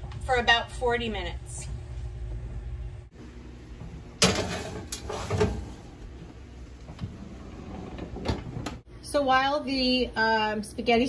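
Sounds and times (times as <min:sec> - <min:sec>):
baking sheet clattering: 0:04.2 - 0:05.8
baking sheet scraping on rack: 0:04.2 - 0:05.9
oven door opening: 0:04.2 - 0:05.9, 0:06.8 - 0:08.8.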